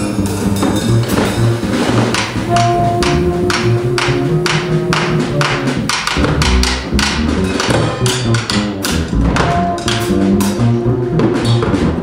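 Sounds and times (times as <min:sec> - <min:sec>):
free jazz ensemble: 0:00.0 - 0:12.0
low string bass notes: 0:00.0 - 0:12.0
wood-block-like drum strikes: 0:00.4 - 0:12.0.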